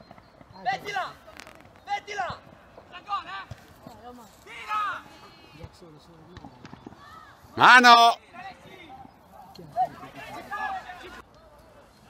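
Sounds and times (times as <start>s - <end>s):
young voices shouting: 9.7s - 11.2s.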